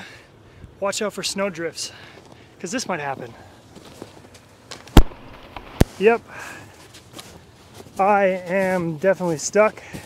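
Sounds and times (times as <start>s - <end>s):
sharp thumps: 4.9s - 5.9s.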